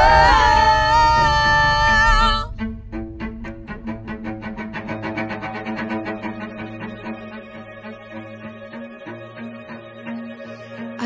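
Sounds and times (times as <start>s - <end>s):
bowed strings repeated notes: 2.1s - 11.0s.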